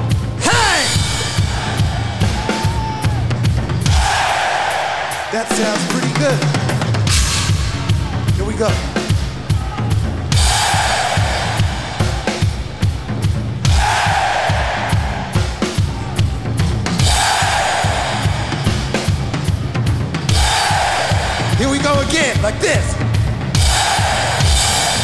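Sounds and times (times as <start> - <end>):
rock drum beat: 0.0 - 25.0
crowd shouting hey: 0.4 - 6.4, 17.0 - 18.6, 20.3 - 21.6.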